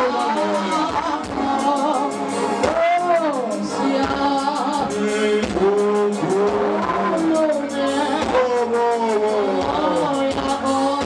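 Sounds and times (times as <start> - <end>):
music with singing: 0.0 - 11.0.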